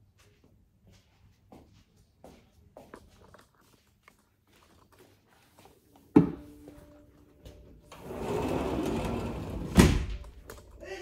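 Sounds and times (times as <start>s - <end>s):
sliding glass door rumbling: 8.0s - 10.1s.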